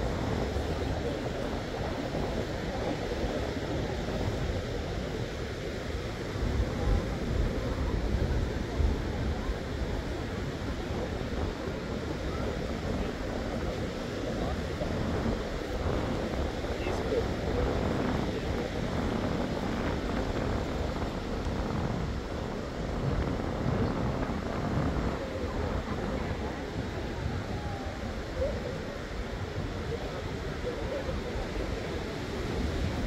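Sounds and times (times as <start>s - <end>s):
people chattering: 0.0s - 33.0s
small surf washing: 0.0s - 33.0s
wind on microphone: 0.0s - 33.0s.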